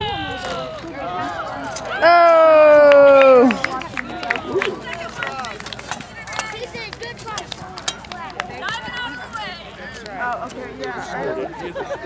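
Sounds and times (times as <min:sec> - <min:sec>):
spectators calling out and chattering: 0:00.0 - 0:12.0.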